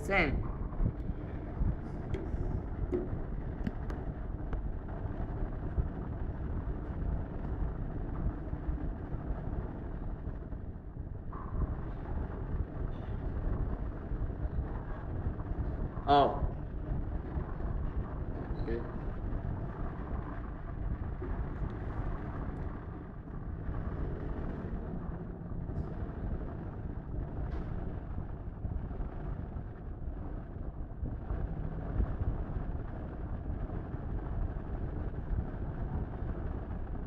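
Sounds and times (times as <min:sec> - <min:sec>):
low background rumble: 0:00.0 - 0:37.0.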